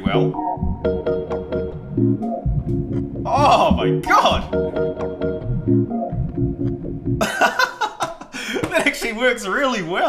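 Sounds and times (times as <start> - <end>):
slowed organ-like chords: 0.0 - 8.0
man talking: 3.3 - 4.6, 8.6 - 10.0
man laughing: 7.2 - 9.0.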